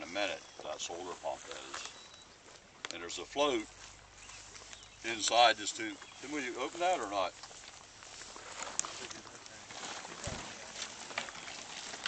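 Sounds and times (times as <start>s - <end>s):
open-air background noise: 0.0s - 12.0s.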